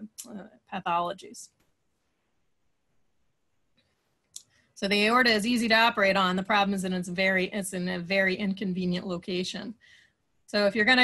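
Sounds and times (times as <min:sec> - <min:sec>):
woman speaking: 0:00.0 - 0:01.5, 0:04.8 - 0:09.8, 0:10.5 - 0:11.0.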